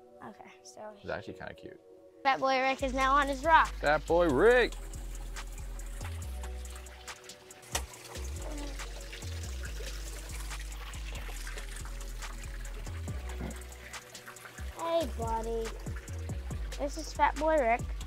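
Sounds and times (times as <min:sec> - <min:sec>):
background music with bass line: 0:02.8 - 0:18.0
water splashes: 0:02.8 - 0:18.0
water pouring from small waterfall: 0:03.3 - 0:18.0.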